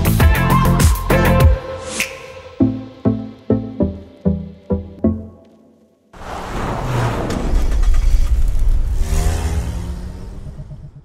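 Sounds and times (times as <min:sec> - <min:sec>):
car engine revving: 0:06.2 - 0:11.0.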